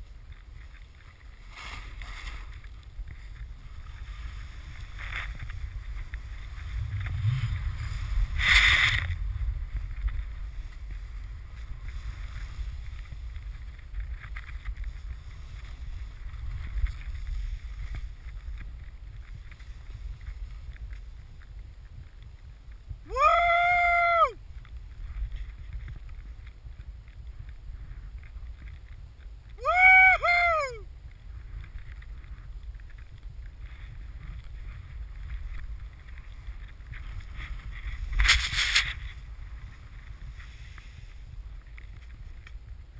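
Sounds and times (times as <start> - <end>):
snowboard riding through powder: 0.0 - 42.9
wind rumbling on microphone: 0.0 - 42.9
snow scraping under board: 0.5 - 21.3, 33.6 - 41.6
person whooping: 23.1 - 24.4, 29.6 - 30.8.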